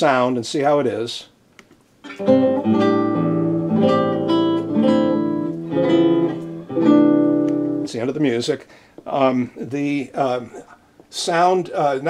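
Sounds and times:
acoustic guitar chords plucked: 2.1s - 8.0s.

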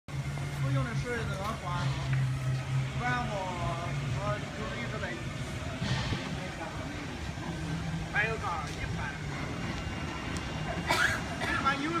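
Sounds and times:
steady low hum: 0.1s - 12.0s
people talking: 0.6s - 2.2s, 3.0s - 9.2s, 10.7s - 12.0s.

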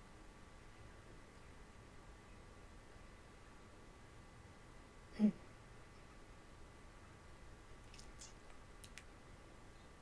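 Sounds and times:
faint short clicks: 7.9s - 9.1s.

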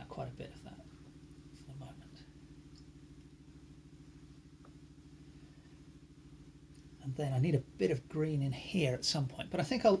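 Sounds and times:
low mechanical hum with flutter: 0.0s - 10.0s.

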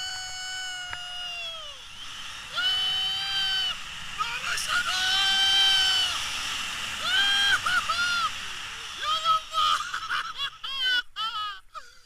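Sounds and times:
man yelling in excitement: 0.0s - 1.8s, 2.5s - 6.2s, 7.0s - 11.7s
wind hiss on microphone: 0.0s - 11.2s.

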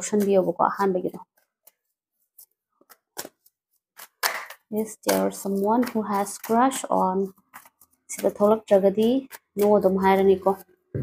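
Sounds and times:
cards shuffling clicks: 1.4s - 8.4s.

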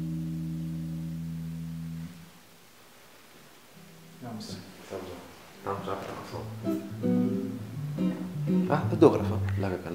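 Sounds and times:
electric guitar notes picked: 0.0s - 2.2s, 5.6s - 9.9s.

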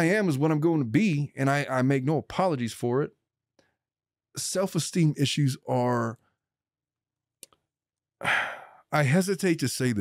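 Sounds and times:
man speaking: 0.0s - 3.1s, 4.4s - 6.2s, 8.2s - 10.0s
man sighing: 8.2s - 8.8s.

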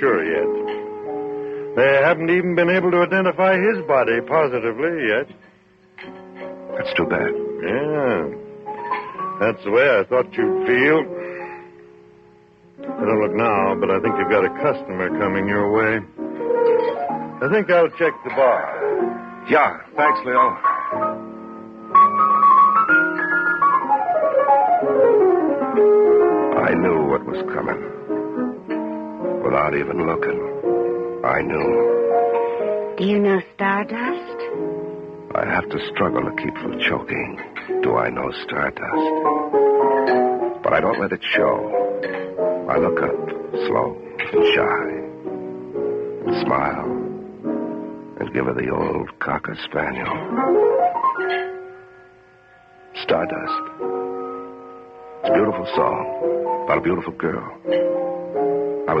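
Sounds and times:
piano run and held chord: 0.0s - 33.1s, 33.8s - 59.0s
piano descending run: 12.8s - 33.0s, 50.0s - 51.8s.

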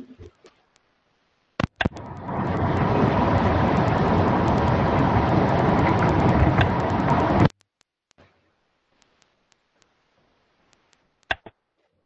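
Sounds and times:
loud rushing noise: 1.7s - 7.5s.

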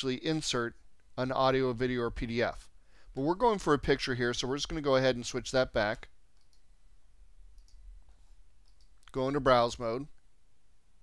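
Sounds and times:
computer mouse clicks: 6.3s - 6.7s, 7.5s - 7.8s, 8.6s - 9.2s.

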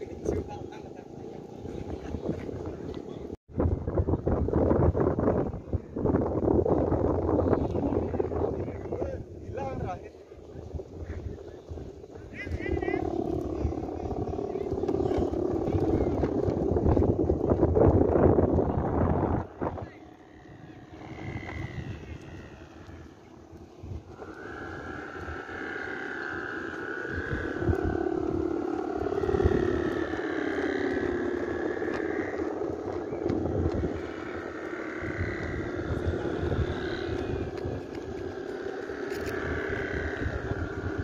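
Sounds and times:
kite hummers droning: 0.0s - 41.0s
wind rumbling on microphone: 0.0s - 41.0s.

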